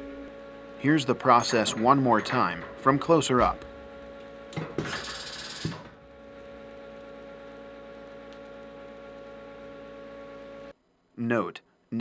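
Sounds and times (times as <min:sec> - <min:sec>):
machine humming: 0:00.0 - 0:10.8
tool clamping clunk: 0:01.4 - 0:02.8
air hissing: 0:04.8 - 0:05.8.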